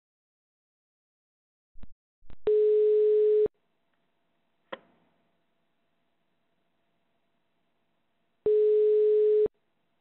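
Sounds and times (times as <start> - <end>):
telephone ringing tone: 2.5 - 3.5, 8.5 - 9.5.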